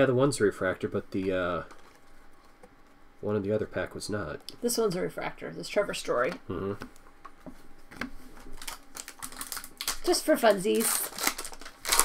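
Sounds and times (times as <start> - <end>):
wrapper crinkling: 1.2 - 2.6, 8.4 - 12.0.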